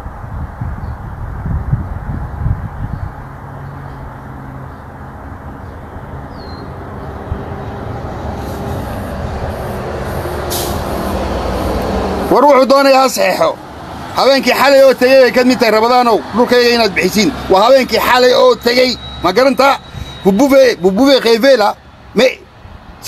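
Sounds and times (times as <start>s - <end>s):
motor vehicle engine rumble: 0.0s - 23.0s
wind buffeting: 0.0s - 23.0s.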